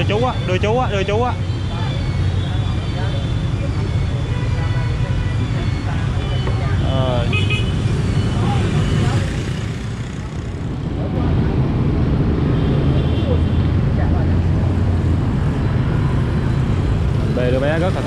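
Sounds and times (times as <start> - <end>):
motorbikes passing close by: 5.0 - 18.0.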